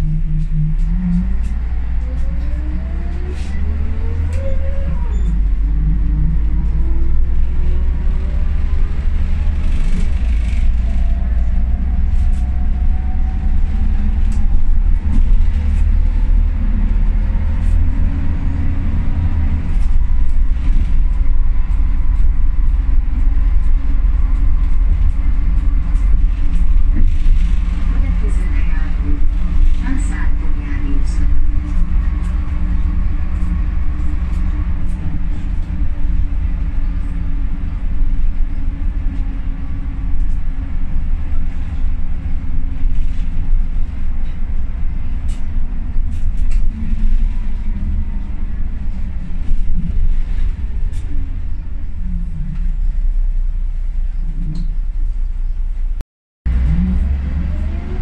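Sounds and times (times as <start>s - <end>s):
rear axle whine: 0.0s - 55.7s, 56.5s - 58.0s
deep diesel bus rumble: 0.0s - 58.0s.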